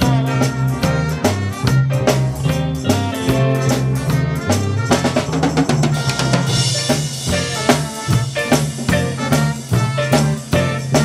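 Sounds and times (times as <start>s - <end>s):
jazz band playing swing: 0.0s - 11.0s.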